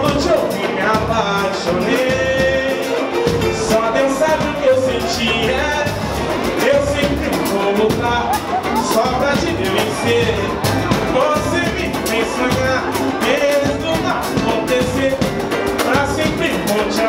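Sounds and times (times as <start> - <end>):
man singing: 0.0 - 17.0
samba percussion: 0.0 - 17.0.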